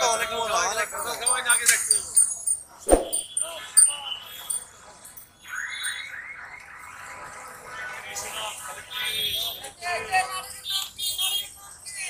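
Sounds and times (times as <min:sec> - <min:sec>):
light street noise: 0:00.0 - 0:12.0.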